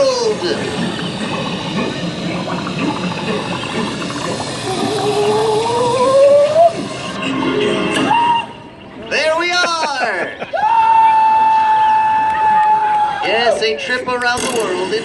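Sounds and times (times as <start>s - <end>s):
rising whistle-like tone: 3.6s - 7.3s, 7.9s - 8.7s.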